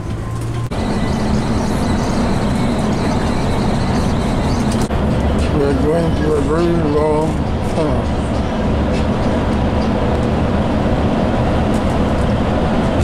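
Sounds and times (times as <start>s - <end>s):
bus engine and road noise: 0.0s - 13.0s.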